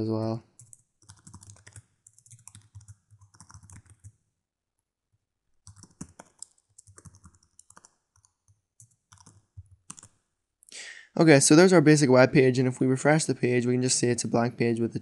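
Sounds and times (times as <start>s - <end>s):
faint keyboard typing: 0.4s - 4.2s, 5.6s - 10.3s.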